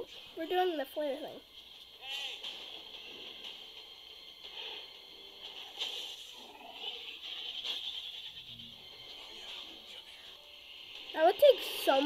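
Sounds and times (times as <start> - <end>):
faint movie audio: 0.0 - 12.0.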